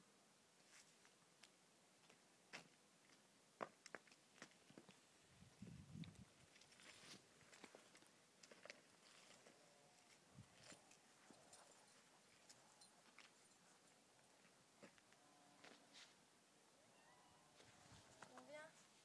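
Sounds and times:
hooves and footsteps on hard ground: 0:00.6 - 0:16.2, 0:17.6 - 0:19.0.

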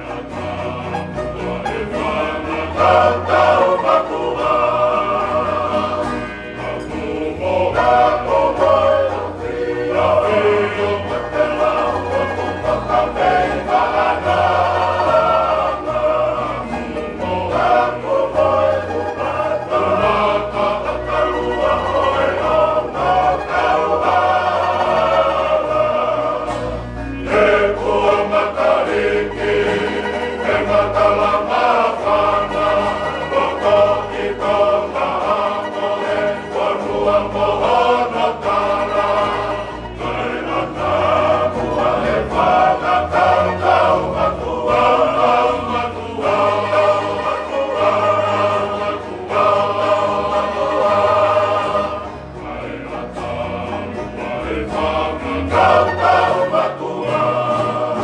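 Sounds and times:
men's choir singing in harmony: 0:00.0 - 0:58.0
strummed acoustic guitars: 0:00.0 - 0:58.0.

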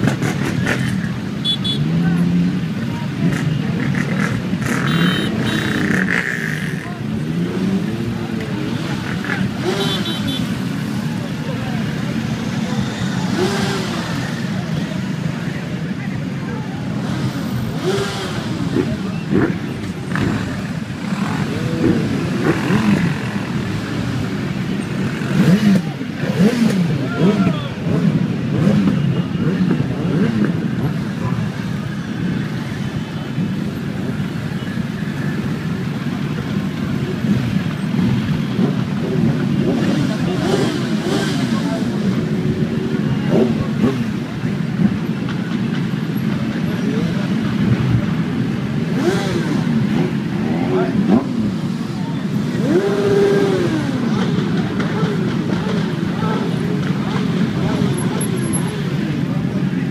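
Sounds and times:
motorcycle engines revving: 0:00.0 - 0:59.9.

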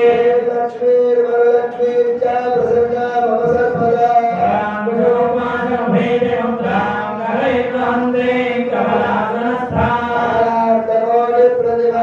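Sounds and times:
man chanting in long notes: 0:00.0 - 0:12.0.

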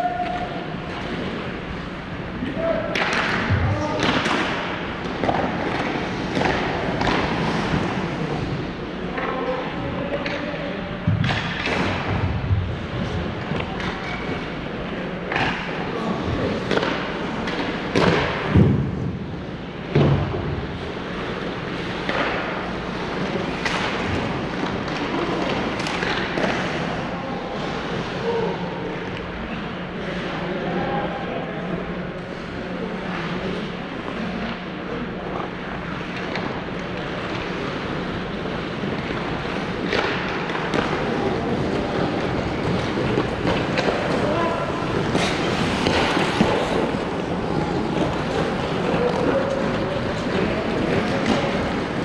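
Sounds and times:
hockey sticks and pucks striking: 0:00.0 - 0:29.3, 0:34.1 - 0:52.0
steady low hum: 0:00.4 - 0:52.0
ice skates scraping on ice: 0:37.1 - 0:52.0.

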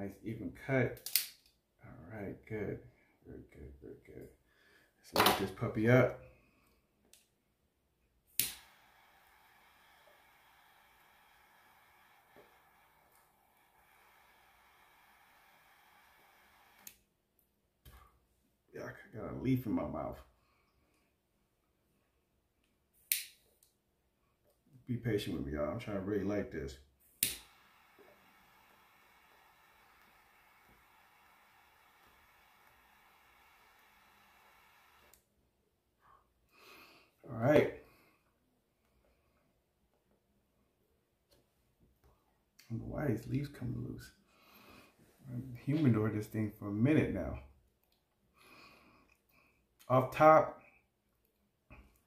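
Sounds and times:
faint steady hiss: 0:00.0 - 0:39.7, 0:40.7 - 0:52.0
torch lighter click: 0:01.0 - 0:01.5, 0:08.3 - 0:17.0, 0:23.1 - 0:23.4, 0:27.2 - 0:35.2
lighter flame hissing: 0:08.3 - 0:17.1, 0:27.0 - 0:35.2.

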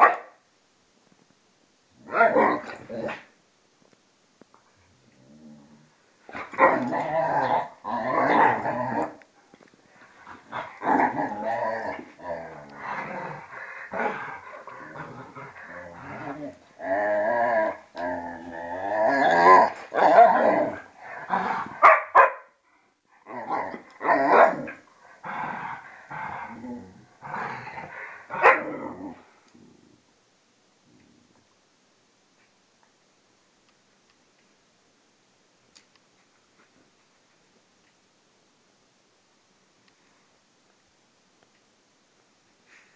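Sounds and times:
dogs barking: 0:00.0 - 0:00.3, 0:21.8 - 0:22.5
dogs growling: 0:05.1 - 0:09.2, 0:10.2 - 0:21.8, 0:23.2 - 0:30.0.

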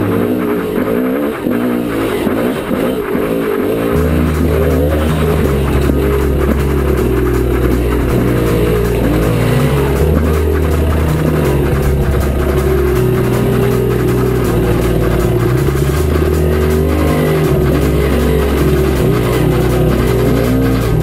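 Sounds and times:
background music with bass: 0:00.0 - 0:21.0
dirt bike engine revving: 0:00.0 - 0:21.0.

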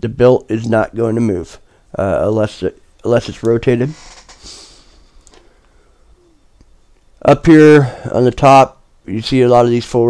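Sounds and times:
soft breath: 0:04.3 - 0:06.6.

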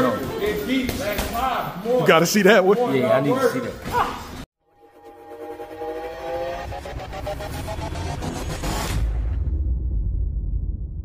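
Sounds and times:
low rumble: 0:06.8 - 0:11.0.

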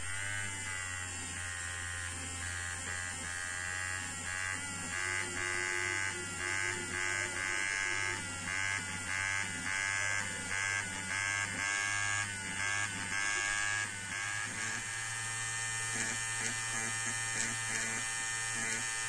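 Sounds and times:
electric eraser whirring: 0:00.0 - 0:19.0.

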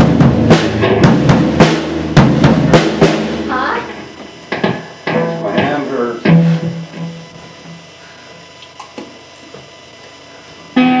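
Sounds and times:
electric guitar chord: 0:00.0 - 0:08.2, 0:10.7 - 0:11.0
electric guitar notes: 0:00.0 - 0:08.3, 0:10.7 - 0:11.0.

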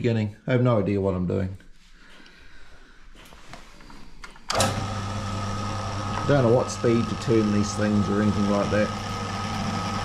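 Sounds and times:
drill motor whining: 0:04.5 - 0:10.0.

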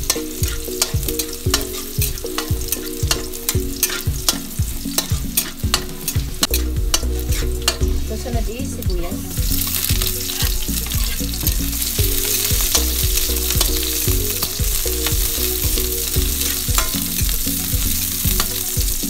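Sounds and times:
garlic sizzling in hot oil: 0:00.0 - 0:19.0
metal spatula scraping wok: 0:00.1 - 0:18.8.

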